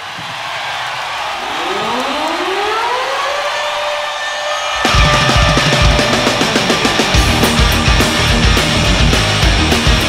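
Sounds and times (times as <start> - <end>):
crowd cheering: 0.0 - 10.0.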